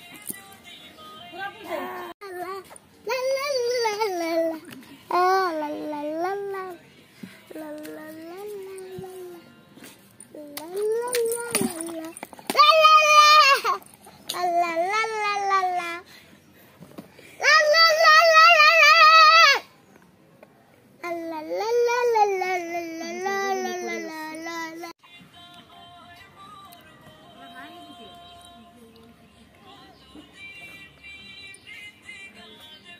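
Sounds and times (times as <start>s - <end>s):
faint music with held tones: 0.0s - 32.9s
child singing a long note: 1.7s - 6.8s, 7.5s - 9.5s
child vocalizing sing-song: 1.7s - 6.8s, 7.4s - 9.5s, 10.3s - 16.1s, 21.0s - 25.0s.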